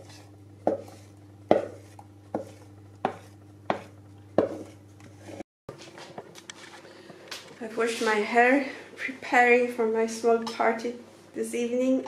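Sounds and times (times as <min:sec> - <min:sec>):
low steady hum: 0:00.0 - 0:12.0
spatula knocking in plastic bowl: 0:02.4 - 0:04.7.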